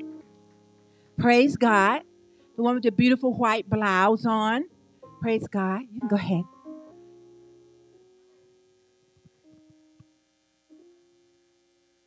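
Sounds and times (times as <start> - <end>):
held keyboard chords: 0.0 - 12.0.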